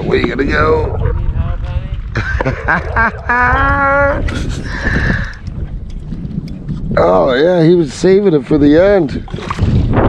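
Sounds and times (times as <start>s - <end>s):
wind rumbling on microphone: 0.0s - 10.0s
person making drawn-out vocal sound: 2.8s - 4.3s.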